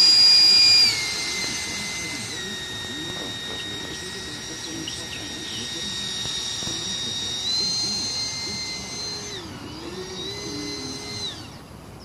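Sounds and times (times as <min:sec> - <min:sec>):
electric ducted fan whining: 0:00.0 - 0:12.0.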